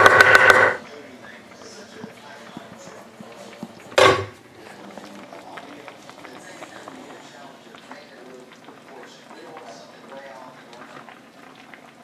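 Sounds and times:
stew bubbling in a skillet: 0:00.0 - 0:12.0.

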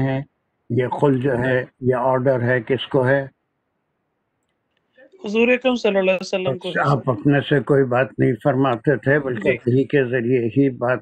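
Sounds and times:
man speaking: 0:00.7 - 0:03.3, 0:06.5 - 0:11.0.

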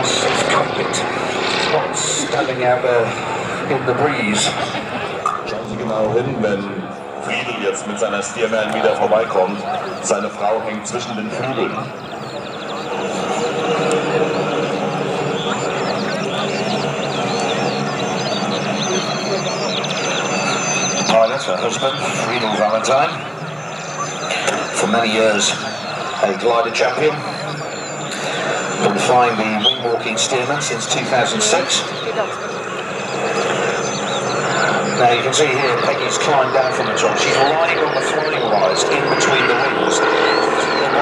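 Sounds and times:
radial engine plane flying by: 0:00.0 - 0:41.0.

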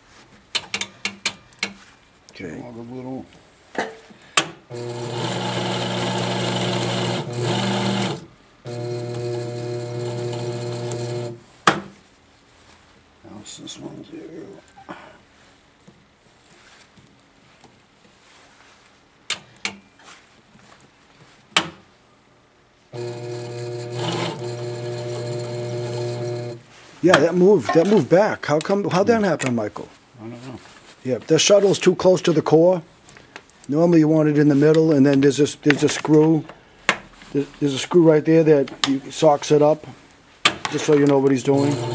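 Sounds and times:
winding machine motor running: 0:04.7 - 0:11.4, 0:23.0 - 0:26.6, 0:41.5 - 0:41.9.

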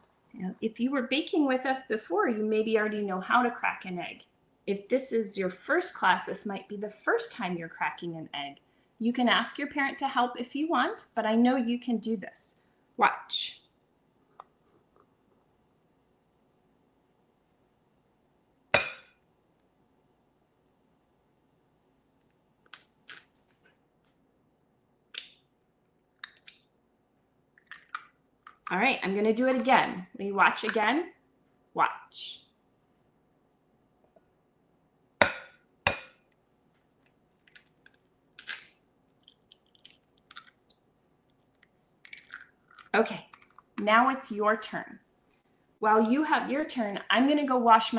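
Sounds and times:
eggshell crackling: 0:25.0 - 0:26.8, 0:27.5 - 0:28.8, 0:35.2 - 0:43.8.

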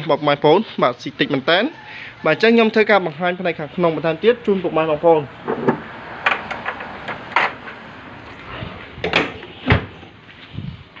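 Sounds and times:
car bonnet slammed shut: 0:05.4 - 0:07.6, 0:09.0 - 0:10.0.

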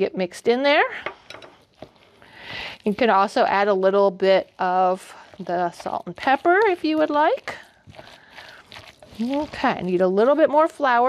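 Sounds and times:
spatula scraping batter in bowl: 0:01.4 - 0:11.0.

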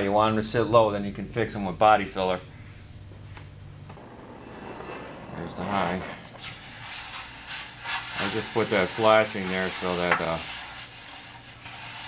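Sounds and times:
low hum: 0:02.5 - 0:07.6
torch flame hissing: 0:03.9 - 0:12.0.

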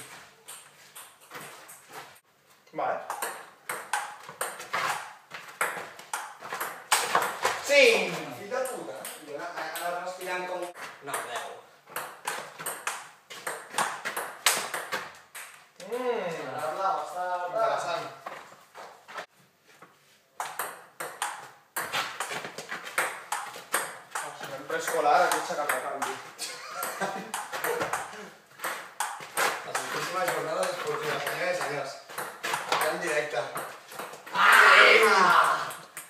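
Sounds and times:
person calling out: 0:34.3 - 0:35.8.

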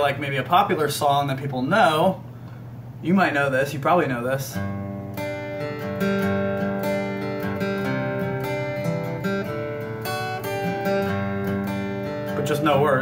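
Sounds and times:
acoustic guitar strumming: 0:04.1 - 0:13.0.

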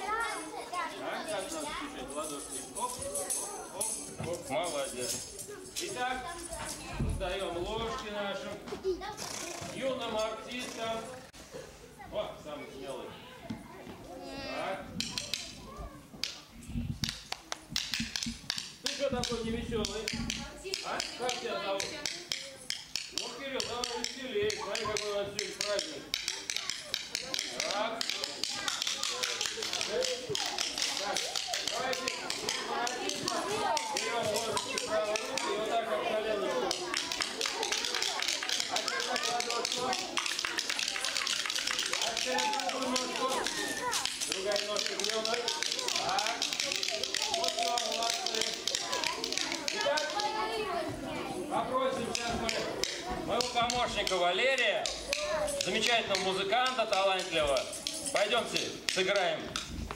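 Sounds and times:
wooden spoons and ratchet clattering: 0:01.4 - 0:06.9, 0:15.0 - 0:15.6, 0:16.2 - 0:35.7, 0:36.5 - 0:50.5, 0:51.8 - 0:59.8
voices talking: 0:18.0 - 0:59.6.

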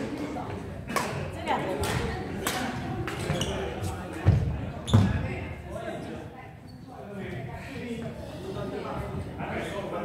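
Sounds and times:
voices chattering: 0:00.0 - 0:10.0.

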